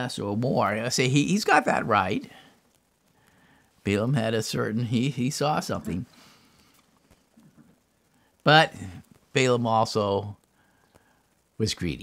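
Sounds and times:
faint soft sounds: 0:00.0 - 0:12.0.

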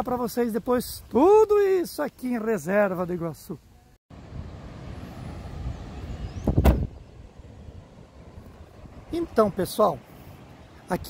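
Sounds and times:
road vehicle passing close by: 0:04.1 - 0:11.0.

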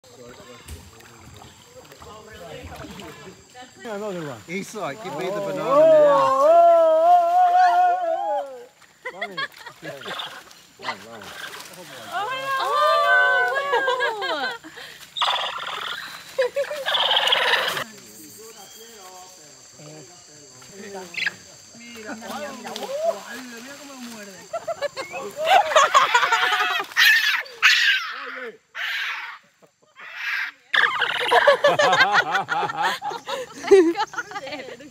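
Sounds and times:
woman squealing laughter: 0:25.0 - 0:28.0, 0:30.0 - 0:34.5.

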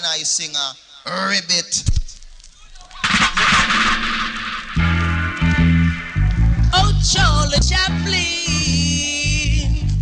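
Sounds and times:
cassette tape hiss: 0:00.0 - 0:10.0
reggae music on sound system: 0:02.6 - 0:10.0
heavy bass line: 0:03.0 - 0:10.0.

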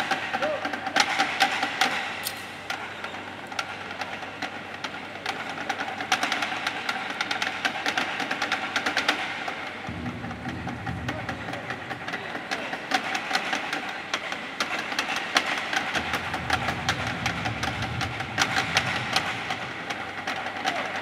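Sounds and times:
low hum: 0:09.8 - 0:12.2, 0:15.8 - 0:21.0.

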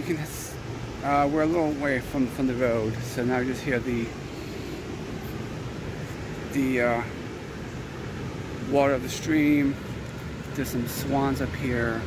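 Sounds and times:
creek water rushing: 0:00.0 - 0:12.0.

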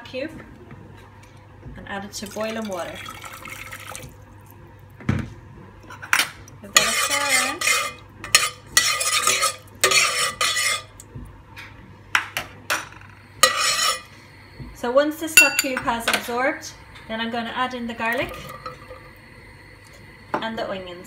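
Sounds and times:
metal spoon stirring in pot: 0:06.7 - 0:11.0, 0:13.4 - 0:14.1.

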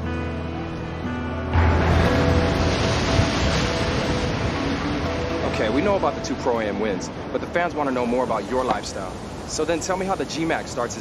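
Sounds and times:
ocean waves breaking: 0:00.1 - 0:11.0.

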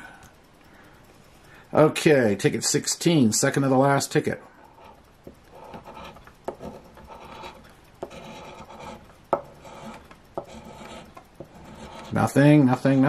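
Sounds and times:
coin scraping ticket: 0:05.6 - 0:12.4.

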